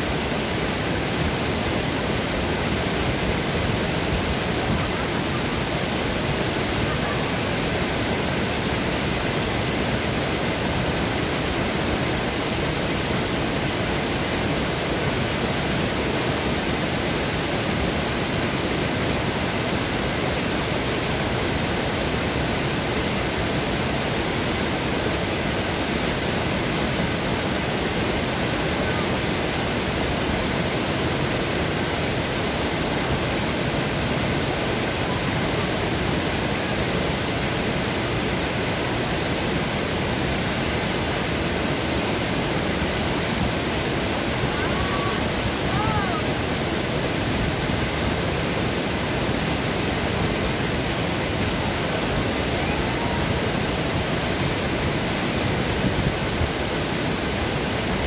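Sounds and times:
small waterfall rushing: 0:00.0 - 0:58.0.

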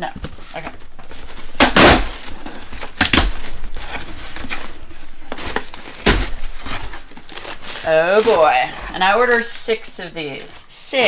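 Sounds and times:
cardboard flaps rustling: 0:00.0 - 0:10.6
packing tape tearing: 0:00.3 - 0:10.7.

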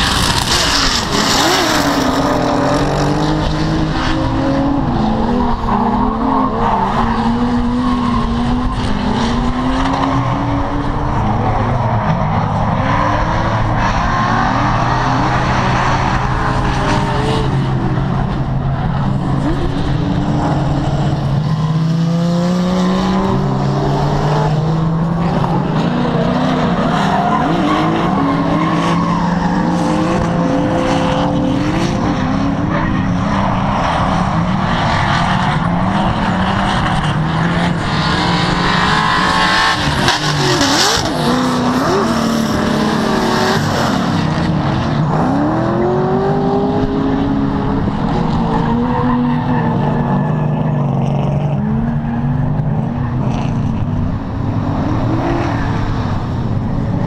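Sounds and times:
car engines revving: 0:00.0 - 0:57.0
tyres squealing and skidding: 0:25.2 - 0:46.1, 0:48.2 - 0:54.0.

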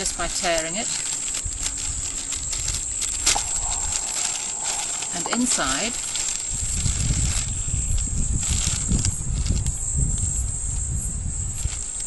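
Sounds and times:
plastic bag rustling: 0:00.0 - 0:07.8
wind rumble on microphone: 0:01.3 - 0:12.0.

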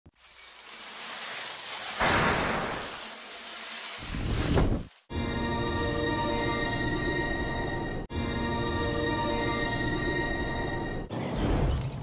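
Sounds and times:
sparkly glassy chimes: 0:00.1 - 0:01.1, 0:03.2 - 0:04.0, 0:05.2 - 0:11.1.

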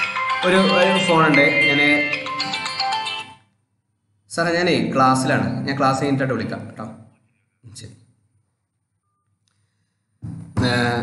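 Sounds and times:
phone musical ringtone: 0:00.0 - 0:03.5.

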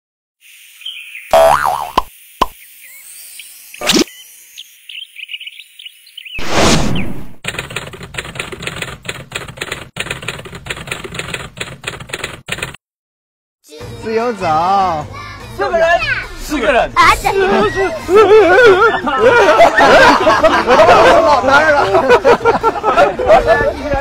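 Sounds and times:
cartoon springy boing: 0:01.3 - 0:02.1
whoosh: 0:06.4 - 0:07.4.

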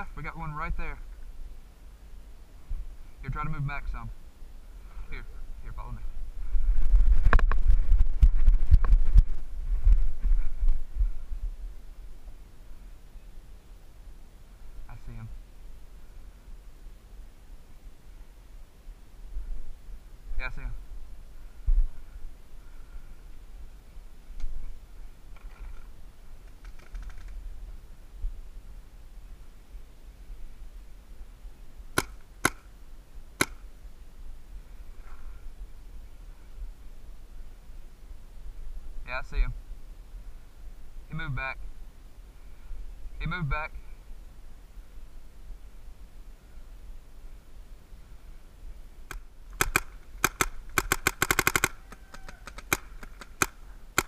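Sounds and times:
sharp cracks and rattles: 0:25.3 - 0:27.4, 0:32.0 - 0:32.7, 0:49.1 - 0:54.0
paintball marker shots: 0:32.0 - 0:32.7, 0:33.4 - 0:33.7, 0:49.1 - 0:54.0.

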